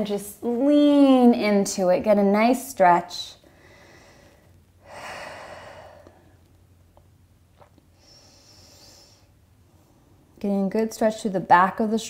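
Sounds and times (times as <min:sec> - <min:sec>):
quiet breath: 0:03.4 - 0:06.5, 0:07.9 - 0:10.3.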